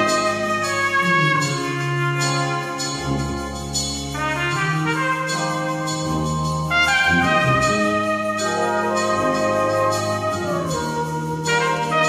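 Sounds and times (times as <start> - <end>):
brass band playing: 0.0 - 12.0
cornet solo: 0.0 - 12.0.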